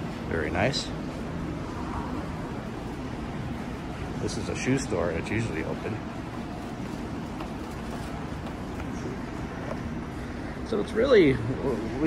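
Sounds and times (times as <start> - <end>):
low indoor rumble and hiss: 0.0 - 12.0.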